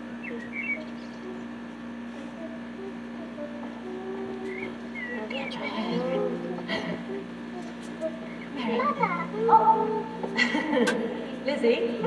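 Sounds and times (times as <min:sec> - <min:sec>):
birds chirping: 0:00.0 - 0:09.3
steady low hum: 0:00.0 - 0:12.0.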